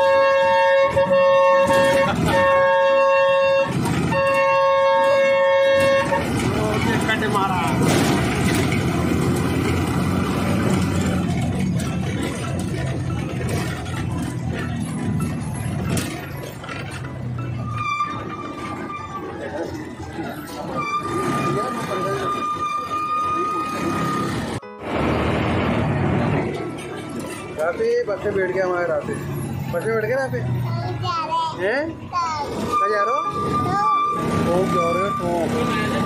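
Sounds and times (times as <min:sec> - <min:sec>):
multi-tone vehicle horn: 0:00.0 - 0:08.6, 0:13.5 - 0:25.2, 0:32.6 - 0:36.0
bus engine running: 0:00.0 - 0:36.0
street traffic: 0:00.0 - 0:36.0.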